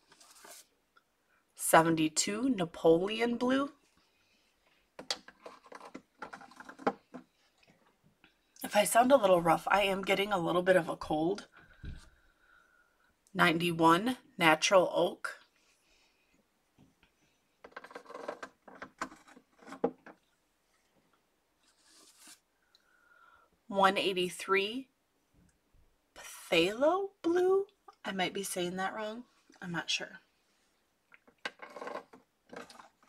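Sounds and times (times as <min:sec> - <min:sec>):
rustling: 0:00.0 - 0:00.8.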